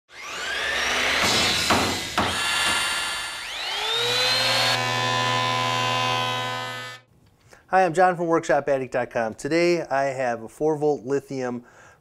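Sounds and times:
rising whir: 0.1s - 7.0s
sharp hits: 1.1s - 4.0s.

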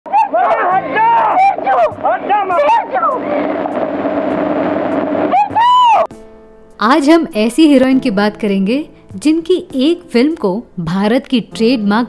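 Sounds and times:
film soundtrack hiss and hum: 0.1s - 6.3s.

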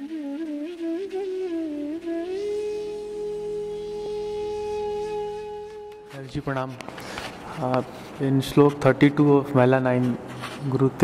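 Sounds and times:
flute melody: 0.0s - 6.8s.

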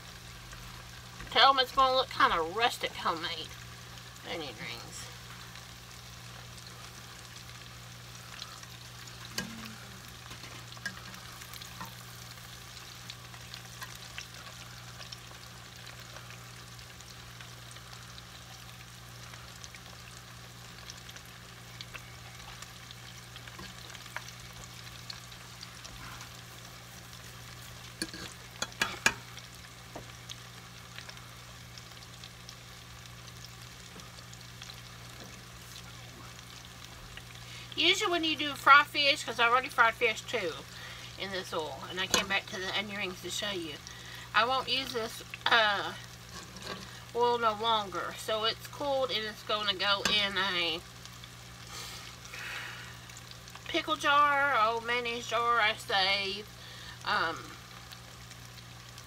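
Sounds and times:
oil sizzling and popping: 0.0s - 59.0s.

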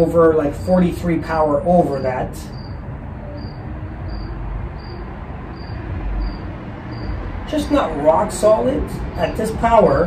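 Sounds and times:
cricket chirping: 1.9s - 7.8s.

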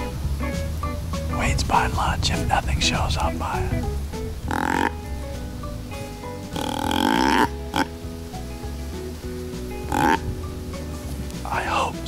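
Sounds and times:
background music: 0.0s - 12.0s
deer grunt call: 4.5s - 5.0s, 6.6s - 7.9s.

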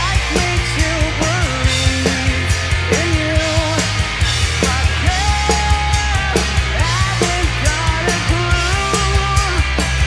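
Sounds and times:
man singing: 0.0s - 9.8s
rock band playing: 0.0s - 10.0s.

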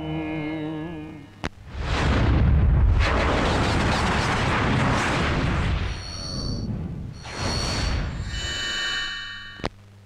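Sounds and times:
rumbling explosion-like blast: 1.7s - 7.2s.

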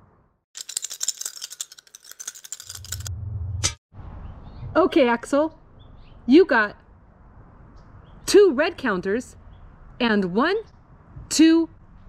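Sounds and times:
plastic counters clattering on glass: 0.6s - 3.1s
low rumble: 2.9s - 4.8s.

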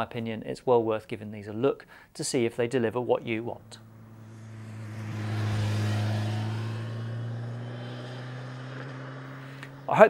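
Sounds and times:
motorcycle passing by: 3.8s - 10.0s.

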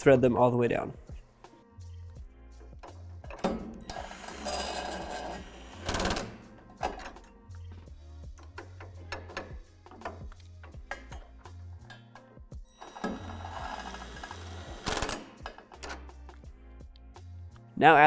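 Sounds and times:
background music with bass beat: 0.0s - 3.9s, 6.3s - 12.8s, 16.0s - 18.0s
power driver spinning nuts: 3.8s - 6.4s, 12.8s - 15.3s.

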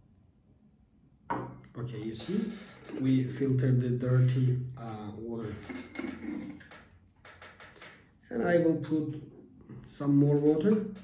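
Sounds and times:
glass jar tapping on table: 1.3s - 1.6s.

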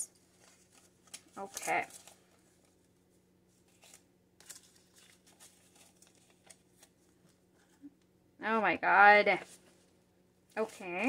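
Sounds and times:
paper banknotes rustling: 0.1s - 7.8s, 10.5s - 11.0s.

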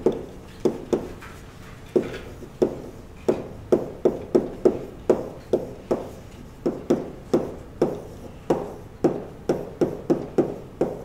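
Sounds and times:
chalk tapping on a blackboard: 0.0s - 11.0s.

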